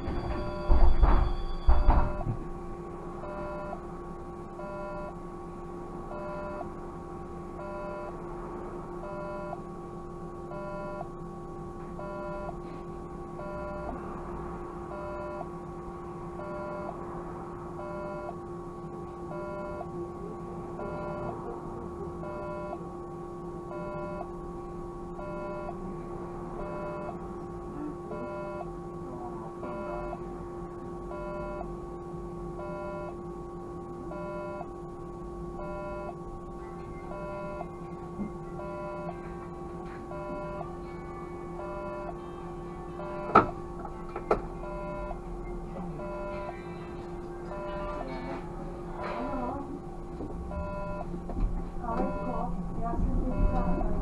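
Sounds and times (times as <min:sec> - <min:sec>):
electrical hum: 0:00.0 - 0:54.0
short electronic beeps: 0:44.6 - 0:46.6.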